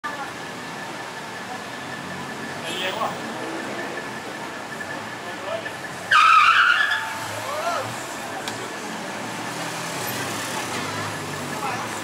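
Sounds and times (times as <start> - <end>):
low traffic hum: 0.0 - 12.0.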